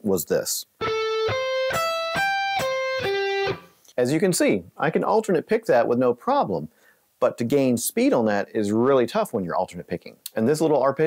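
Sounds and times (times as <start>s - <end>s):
clean electric guitar arpeggio: 0.8s - 3.7s.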